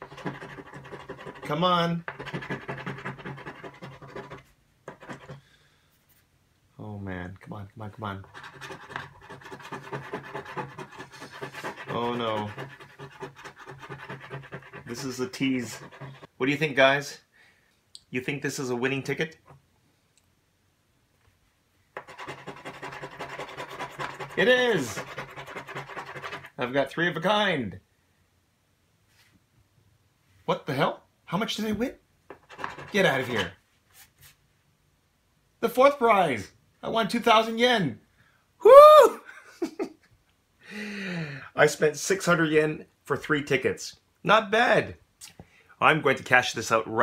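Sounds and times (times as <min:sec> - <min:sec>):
scratching lottery ticket coating: 0:00.0 - 0:05.4, 0:08.2 - 0:16.3, 0:22.0 - 0:26.6, 0:32.4 - 0:33.6.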